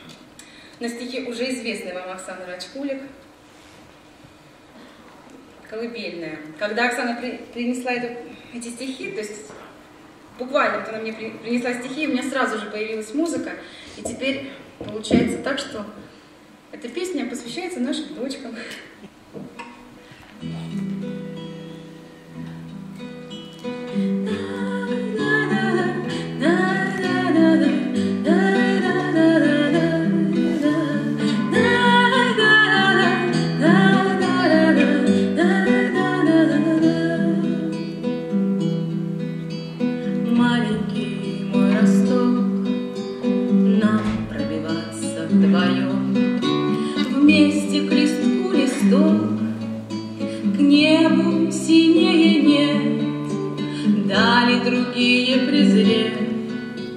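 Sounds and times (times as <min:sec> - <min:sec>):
acoustic guitar lullaby: 0:19.5 - 0:56.9.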